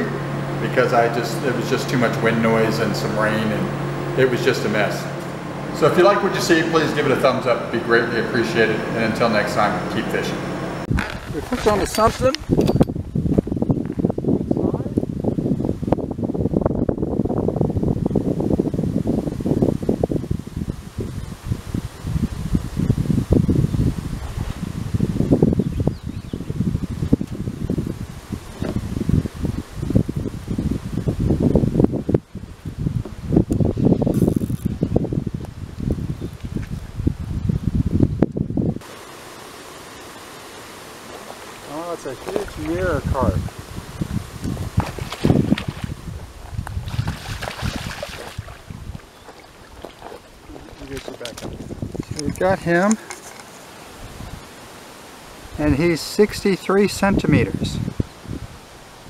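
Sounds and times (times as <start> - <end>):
wind rumbling on microphone: 0.0 - 39.2, 41.0 - 59.0
faint steady hiss: 38.8 - 44.2.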